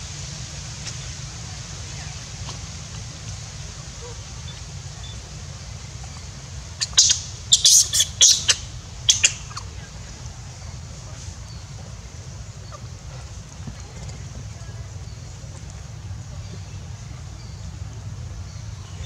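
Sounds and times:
steady low rumble: 0.0 - 19.0
monkey squealing: 6.9 - 8.6.

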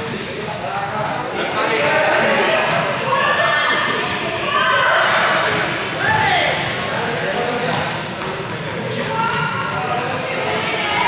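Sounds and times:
young people talking and calling: 0.0 - 11.0.

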